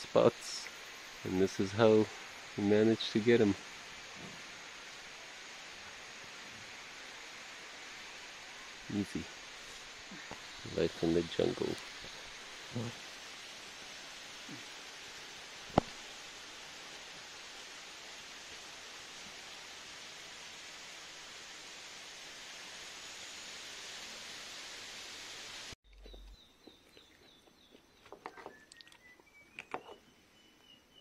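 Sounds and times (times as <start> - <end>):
outdoor background hiss: 0.0 - 31.0.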